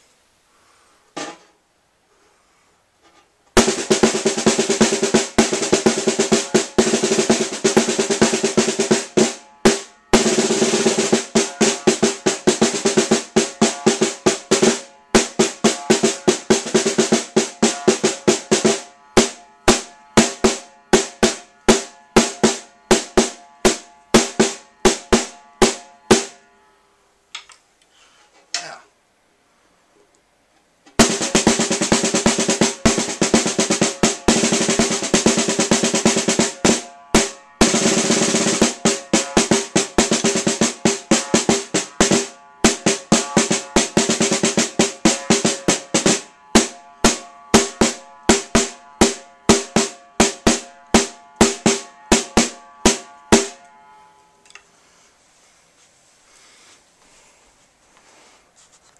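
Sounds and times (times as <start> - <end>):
marching snare drum: 3.6 - 26.4, 31.0 - 53.6.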